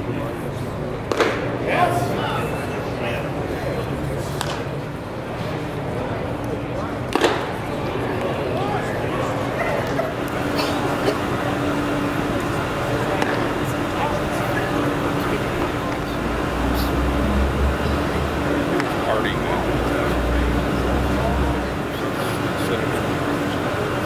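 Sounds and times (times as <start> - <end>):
indistinct voices and chatter: 0.0 - 24.0.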